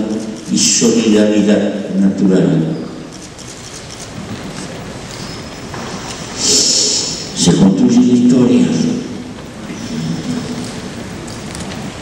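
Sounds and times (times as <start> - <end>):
man speaking: 0.0 - 2.9, 6.4 - 9.3
hall room noise hiss: 0.0 - 12.0.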